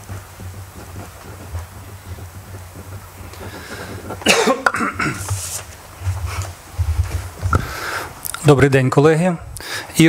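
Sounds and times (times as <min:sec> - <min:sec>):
room hum: 0:00.0 - 0:10.0
person coughing: 0:04.2 - 0:05.2.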